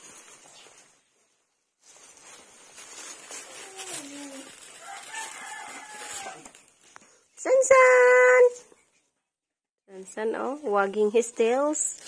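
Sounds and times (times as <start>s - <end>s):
faint outdoor background: 0.0s - 12.0s
rooster crowing: 4.7s - 6.6s.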